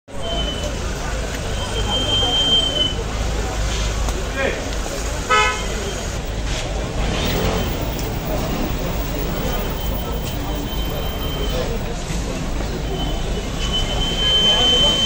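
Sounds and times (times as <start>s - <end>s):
crowd voices: 0.1s - 15.0s
low rumble of street traffic: 0.1s - 15.0s
car horn toot: 5.3s - 5.9s.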